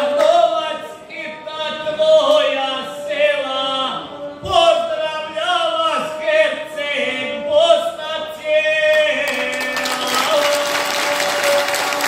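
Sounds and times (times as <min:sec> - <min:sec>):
man singing folk epic: 0:00.0 - 0:12.0.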